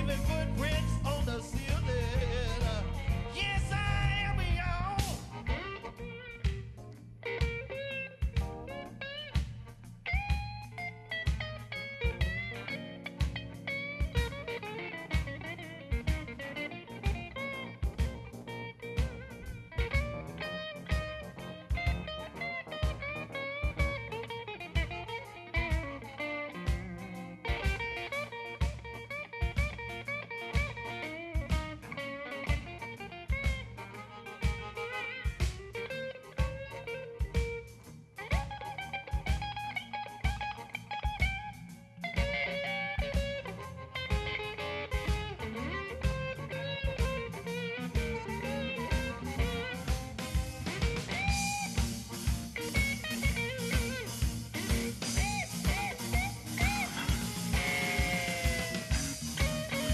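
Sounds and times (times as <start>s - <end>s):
electric blues band playing: 0.0s - 59.9s
electric guitar lead: 0.0s - 59.9s.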